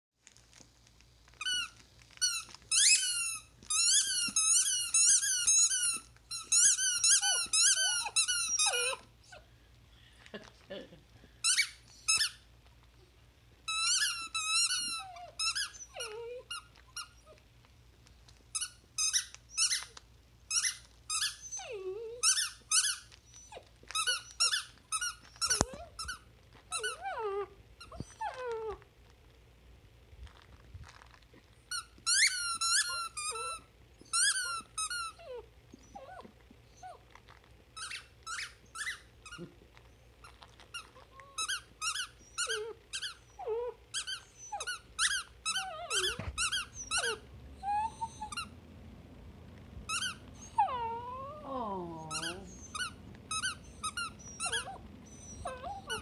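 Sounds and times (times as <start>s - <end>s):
dog toy squeaking: 1.4s - 9.4s, 11.4s - 12.4s, 13.7s - 17.4s, 18.5s - 28.8s, 31.7s - 37.0s, 37.8s - 39.6s, 40.2s - 48.5s, 49.9s - 56.0s.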